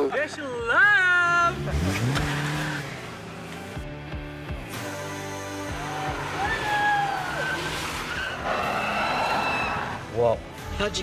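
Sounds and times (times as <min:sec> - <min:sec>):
tyres squealing: 0:05.8 - 0:10.1.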